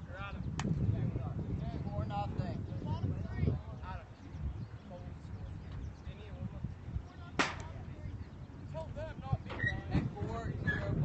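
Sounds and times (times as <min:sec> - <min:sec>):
wind on microphone: 0:00.0 - 0:11.0
sharp knock: 0:07.4 - 0:07.7.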